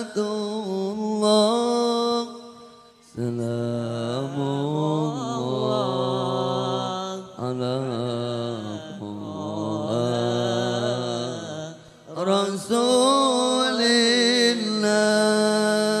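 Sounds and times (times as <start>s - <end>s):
man chanting into a microphone: 0.0s - 16.0s.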